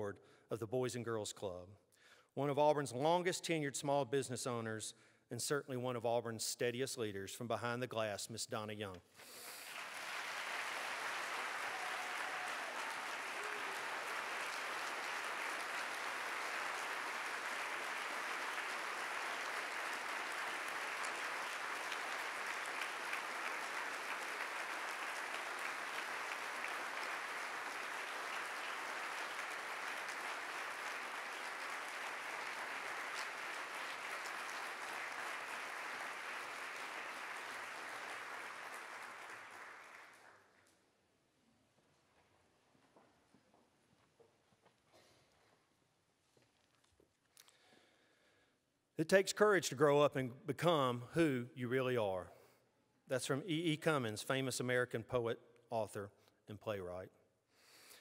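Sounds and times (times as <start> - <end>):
audience applauding: 9.3 - 40.6.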